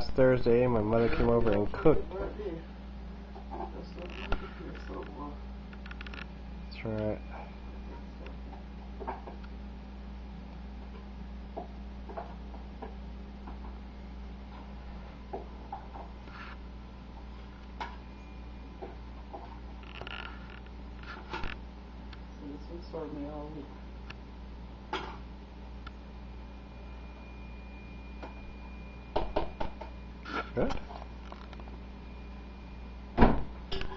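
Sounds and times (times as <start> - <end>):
low hum: 0.0 - 33.9.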